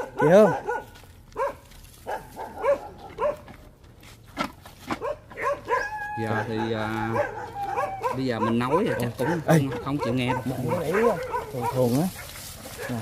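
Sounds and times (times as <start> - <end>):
dogs barking: 0.0 - 3.7, 4.9 - 13.0.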